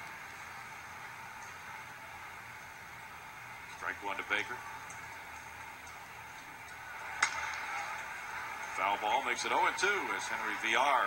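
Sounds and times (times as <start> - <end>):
bat cracking a ball: 6.9 - 8.7.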